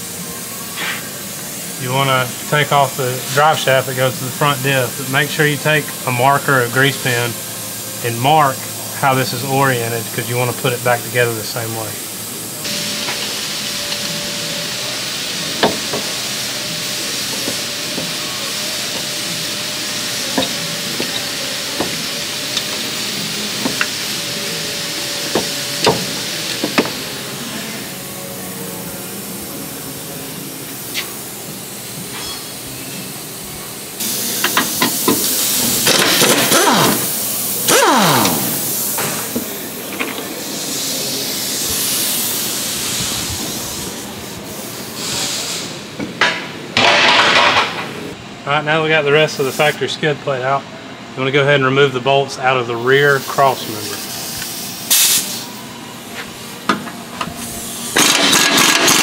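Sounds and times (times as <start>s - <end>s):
steady hiss: 0.0s - 46.3s, 49.1s - 49.9s, 52.5s - 56.7s
air impact wrench rattling: 34.0s - 39.4s, 46.8s - 47.9s, 57.8s - 59.0s.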